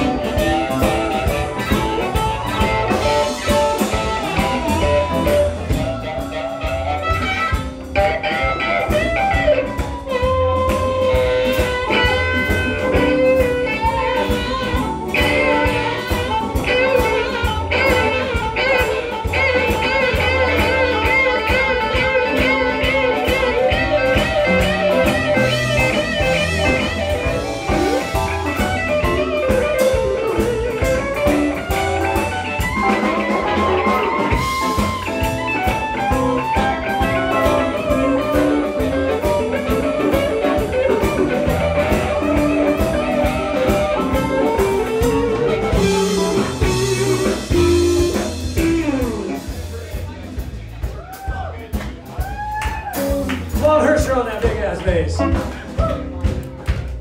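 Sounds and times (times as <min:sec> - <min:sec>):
live blues band playing: 0:00.0 - 0:57.0.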